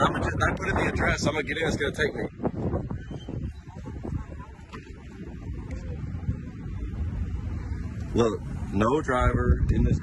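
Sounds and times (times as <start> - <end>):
wind on microphone: 0.0 - 10.0.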